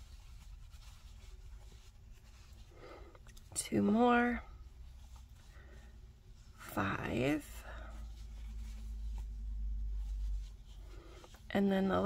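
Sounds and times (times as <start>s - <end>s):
crochet hook rustling through yarn: 0.0s - 12.0s.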